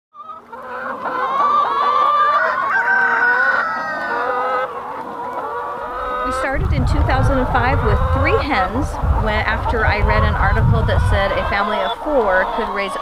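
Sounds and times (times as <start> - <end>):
chickens calling: 0.2 - 13.0.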